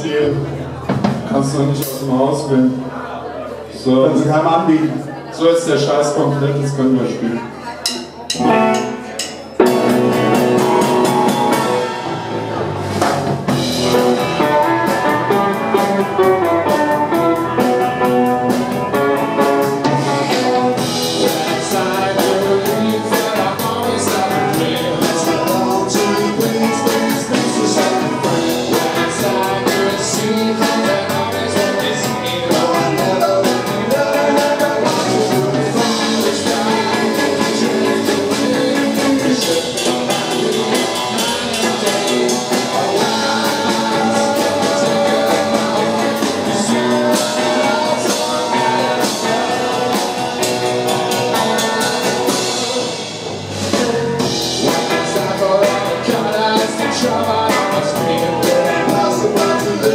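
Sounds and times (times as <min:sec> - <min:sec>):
rock band playing: 0:00.0 - 0:02.8, 0:07.8 - 0:59.9.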